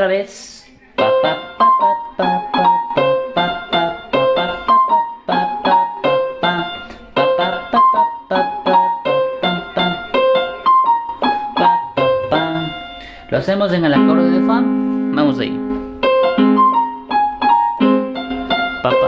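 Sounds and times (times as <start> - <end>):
electronic keyboard piano melody: 0.9 - 19.0.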